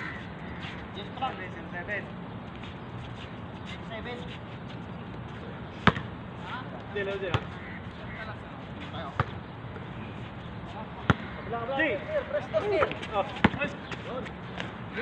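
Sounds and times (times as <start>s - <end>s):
basketball bouncing on hard court: 5.8s - 6.1s.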